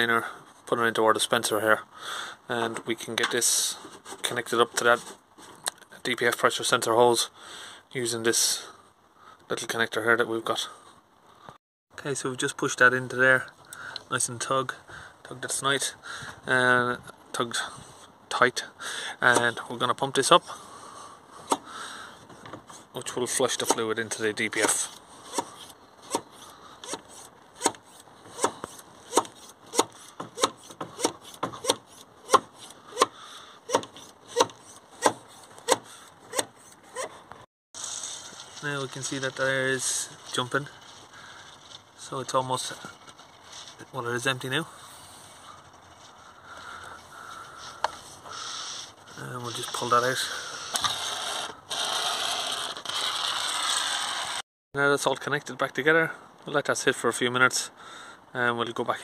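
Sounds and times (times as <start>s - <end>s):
hand pump rubbing strokes: 24.7s - 38.3s, 47.6s - 54.4s.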